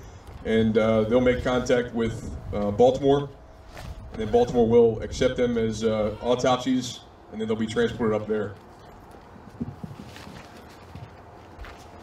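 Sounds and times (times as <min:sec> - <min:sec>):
faint rustle: 0:00.0 - 0:04.6, 0:08.2 - 0:12.0.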